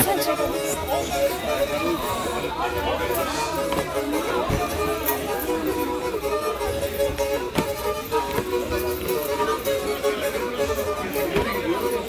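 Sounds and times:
bowed fiddle dance melody: 0.0s - 12.0s.

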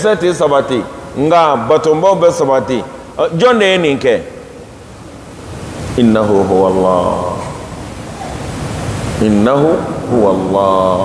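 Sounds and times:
man speaking: 0.0s - 4.4s, 6.0s - 7.8s, 9.2s - 11.0s
steady hiss: 0.0s - 11.0s.

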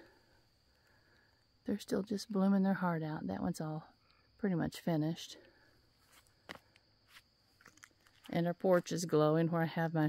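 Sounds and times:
soft footsteps on grass: 6.0s - 9.3s.

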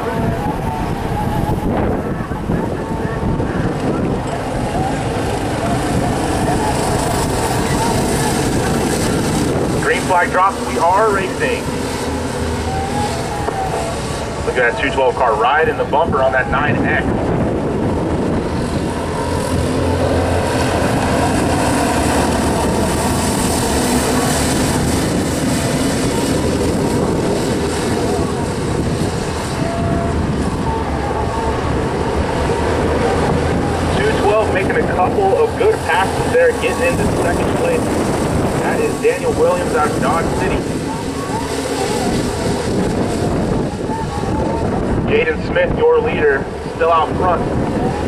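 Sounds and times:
kart engines droning: 0.0s - 48.0s
wind buffeting microphone: 0.0s - 48.0s.

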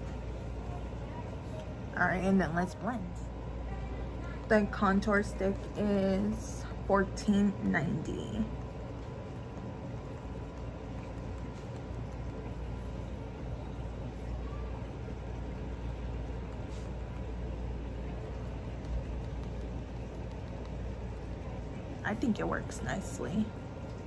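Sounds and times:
low background rumble: 0.0s - 24.0s.

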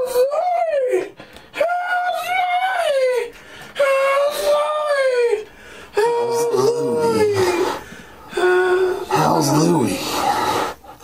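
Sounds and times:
person wailing: 0.0s - 10.3s.

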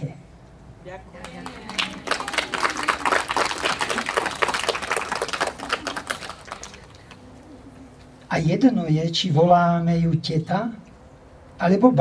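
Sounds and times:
audience applauding: 1.2s - 7.3s.

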